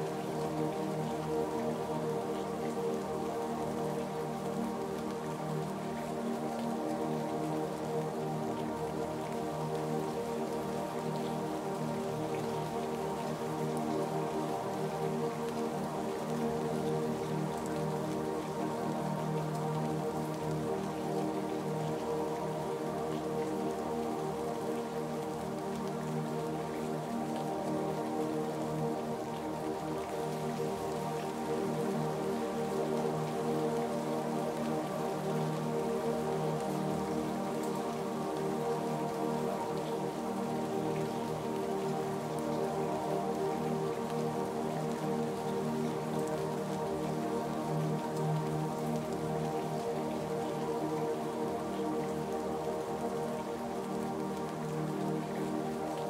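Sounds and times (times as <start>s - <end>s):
ambient music with held chords: 0.0s - 56.0s
steady rainfall: 0.0s - 56.0s.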